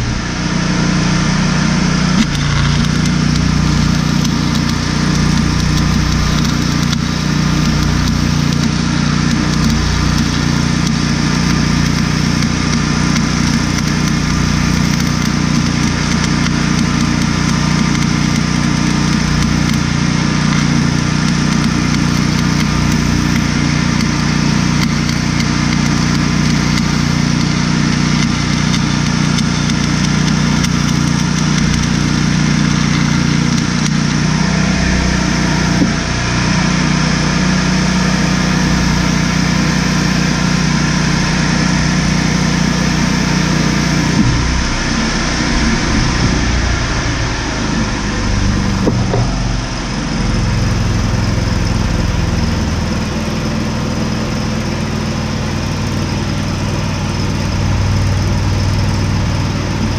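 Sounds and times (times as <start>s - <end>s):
welding arc crackling and hissing: 0.0s - 34.4s
small engine humming: 0.0s - 59.9s.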